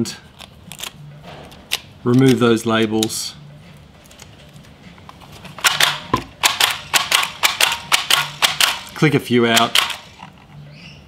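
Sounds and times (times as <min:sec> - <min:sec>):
paper labels rustling: 0:00.2 - 0:10.6
pricing gun clicks: 0:05.6 - 0:10.2.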